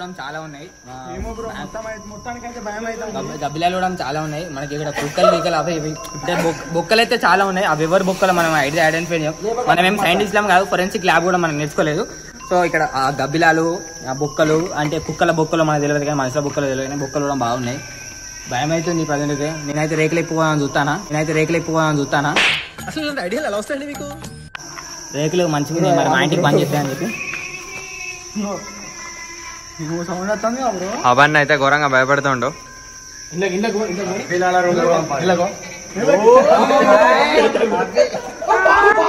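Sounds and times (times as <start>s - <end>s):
crickets chirring: 0.0s - 39.0s
young men calling: 0.0s - 39.0s.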